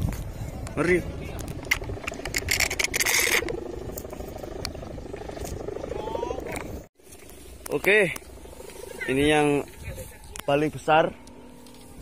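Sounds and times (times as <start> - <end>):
wind rumble on microphone: 0.0 - 6.9, 9.1 - 10.8
kite hummer droning: 0.0 - 12.0.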